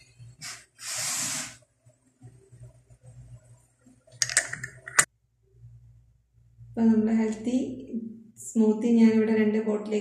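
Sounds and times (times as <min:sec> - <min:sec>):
screw caps clicking on bottles: 0:04.2 - 0:05.1.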